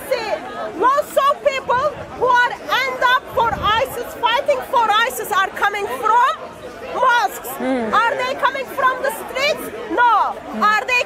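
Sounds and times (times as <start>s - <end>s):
woman talking: 0.0s - 6.4s, 7.0s - 11.0s
voices chattering: 0.0s - 11.0s.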